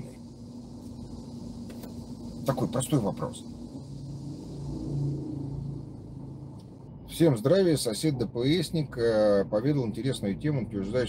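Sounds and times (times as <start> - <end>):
car engine idling: 0.0 - 11.0
faint fan-like hiss: 0.0 - 11.0.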